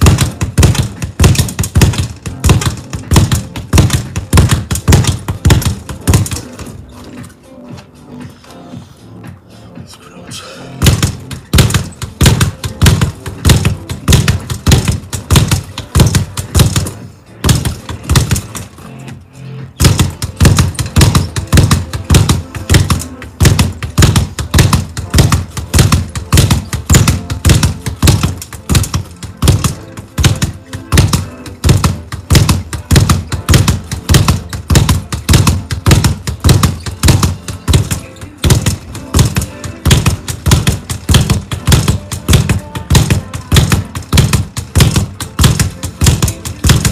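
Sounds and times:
speed bag rattling: 0:00.0 - 0:06.8, 0:10.8 - 0:18.8, 0:19.8 - 0:46.9
background music: 0:00.0 - 0:46.9.

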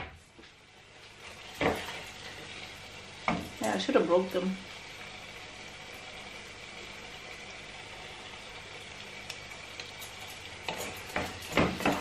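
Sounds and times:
food sizzling in a pot: 0:00.2 - 0:12.0
wooden spoon scraping a pot: 0:09.8 - 0:12.0.

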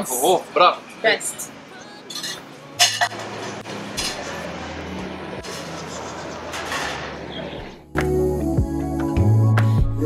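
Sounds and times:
glassware and cutlery clinking: 0:02.1 - 0:04.6.

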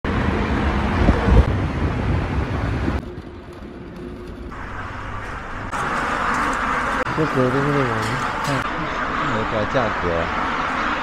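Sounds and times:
road noise: 0:00.0 - 0:11.0
wind buffeting microphone: 0:00.7 - 0:05.8.

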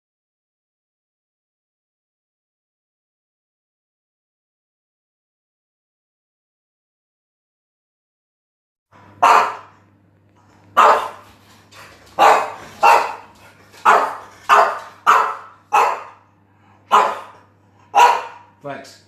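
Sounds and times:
dog barking: 0:09.2 - 0:09.8, 0:10.8 - 0:11.2, 0:12.2 - 0:16.2, 0:16.9 - 0:18.6.

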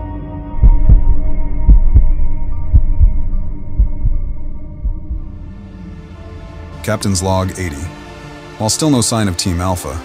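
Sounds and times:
sustained low drone: 0:00.0 - 0:07.3
deep heartbeat-like thumps: 0:00.5 - 0:05.9.

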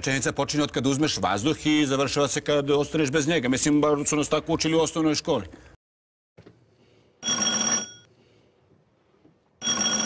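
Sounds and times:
electric doorbell ringing: 0:09.6 - 0:10.0.

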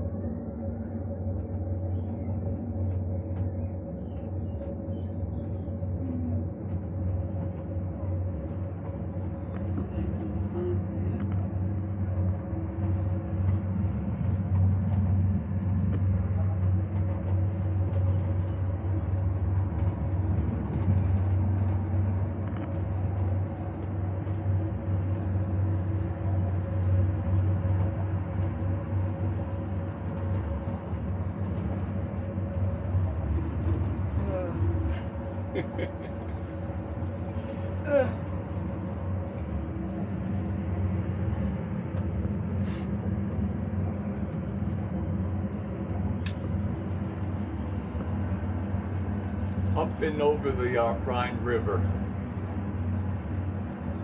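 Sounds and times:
cable car hum and rumble: 0:00.0 - 0:54.0
thin steady whine: 0:00.0 - 0:54.0.

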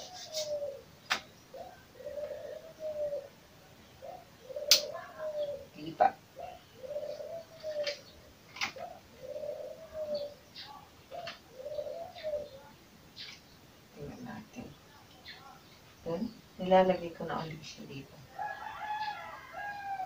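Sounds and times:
dove cooing: 0:00.0 - 0:13.4.

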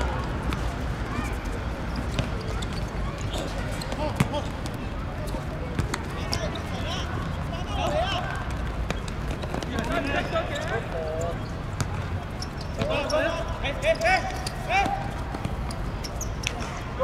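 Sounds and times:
ball kicked and bouncing on turf: 0:01.9 - 0:06.6, 0:14.2 - 0:16.6
footballers shouting: 0:03.4 - 0:08.7, 0:12.8 - 0:15.5.

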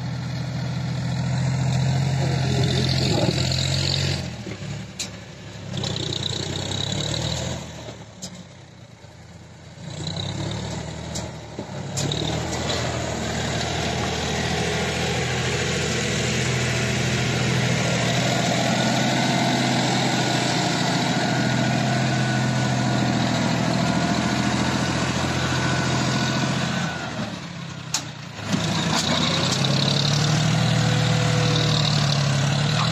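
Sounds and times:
tractor diesel engine running: 0:00.0 - 0:32.9.

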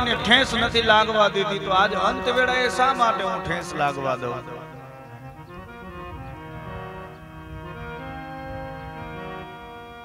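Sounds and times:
harmonium chords: 0:00.0 - 0:10.0.

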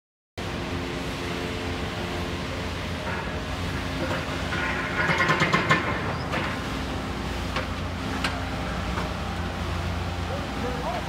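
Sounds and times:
excavator engine hum: 0:00.4 - 0:11.0.

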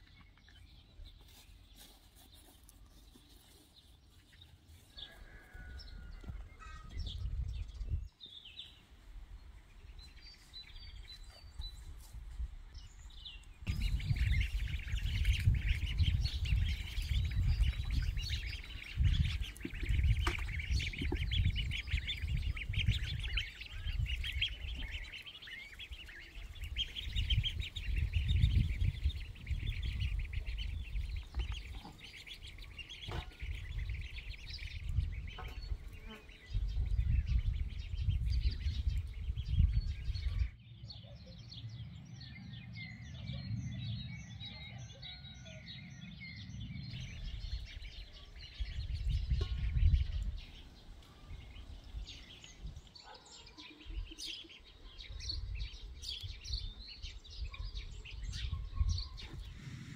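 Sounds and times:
birds chirping: 0:00.0 - 0:59.9
wind buffeting microphone: 0:05.7 - 0:08.6, 0:09.3 - 0:40.9, 0:41.5 - 0:53.1, 0:55.0 - 0:59.9.

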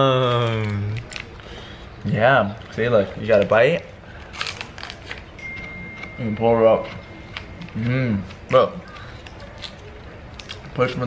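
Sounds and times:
plastic wrapper crackling: 0:04.2 - 0:05.3.

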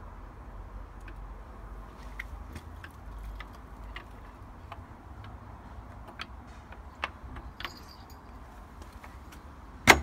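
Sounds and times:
high metallic jingle: 0:07.6 - 0:08.4.

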